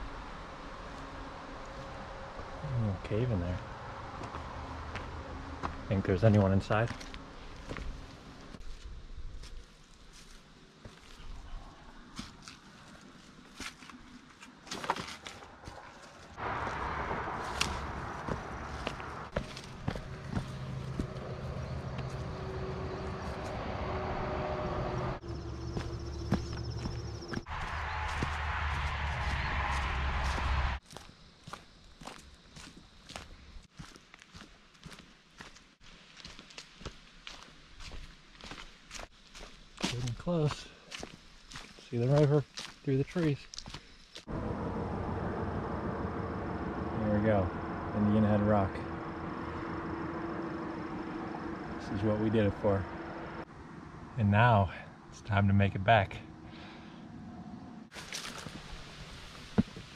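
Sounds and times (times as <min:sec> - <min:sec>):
footsteps on dirt trail: 0:03.4 - 0:23.7, 0:25.2 - 0:44.3, 0:57.9 - 0:59.9
loud low rumble with hum: 0:44.3 - 0:50.2.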